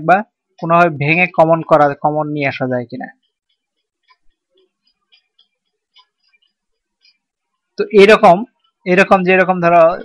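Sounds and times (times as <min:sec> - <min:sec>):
stylus clicking on tablet: 0:03.0 - 0:08.9.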